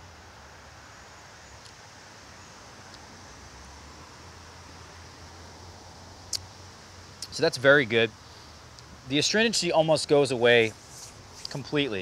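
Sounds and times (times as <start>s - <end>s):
faint ticks: 8.7s - 8.9s.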